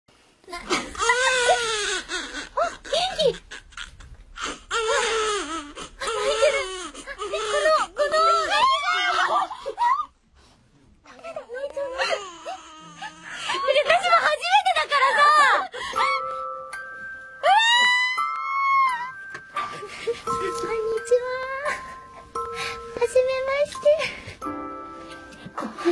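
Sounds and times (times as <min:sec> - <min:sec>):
baby crying: 0:00.7 - 0:09.5, 0:11.9 - 0:13.6, 0:15.0 - 0:16.4, 0:17.4 - 0:19.8
background music held notes: 0:16.0 - 0:25.9.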